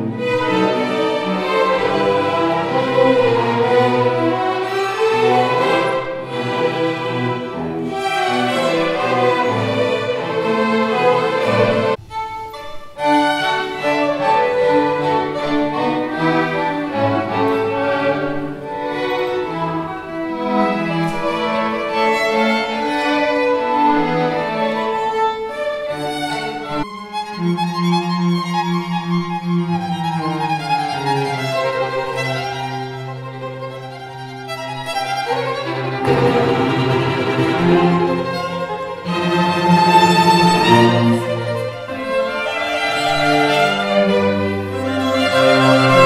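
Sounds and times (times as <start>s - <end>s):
string orchestra playing: 0.0s - 46.0s.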